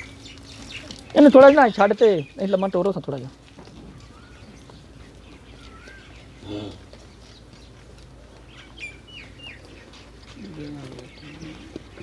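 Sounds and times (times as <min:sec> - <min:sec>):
bird chirping: 0:00.0 - 0:12.0.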